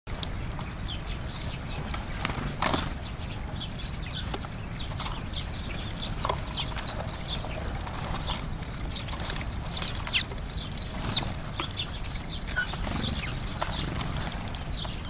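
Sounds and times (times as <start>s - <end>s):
low steady rumble: 0.1s - 15.0s
sparrows chirping: 0.1s - 15.0s.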